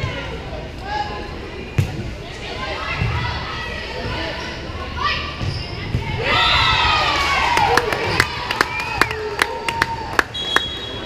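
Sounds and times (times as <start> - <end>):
referee's whistle: 10.3 - 11.0.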